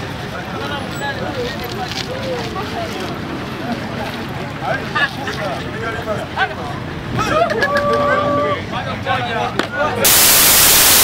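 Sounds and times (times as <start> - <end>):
crowd voices: 0.0 - 10.1
loud static hiss: 10.0 - 11.0.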